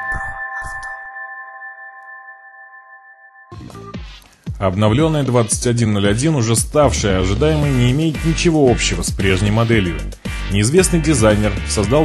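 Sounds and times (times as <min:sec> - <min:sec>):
ringing synth chord: 0:00.0 - 0:03.8.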